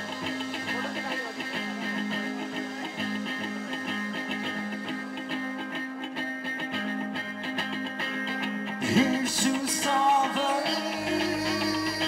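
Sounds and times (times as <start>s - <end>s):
live rock band music: 0.0s - 12.0s
picked electric guitar pattern: 0.0s - 12.0s.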